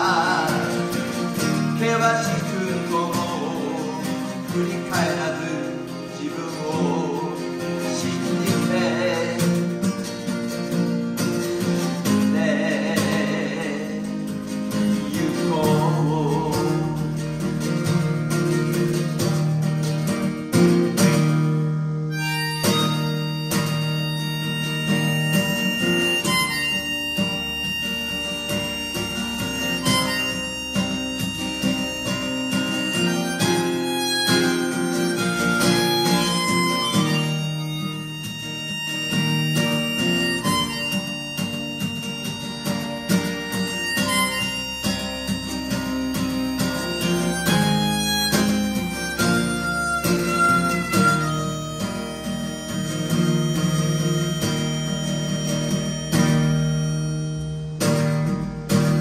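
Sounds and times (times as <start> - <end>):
acoustic guitar strumming: 0.0 - 59.0
harmonica solo: 0.0 - 59.0.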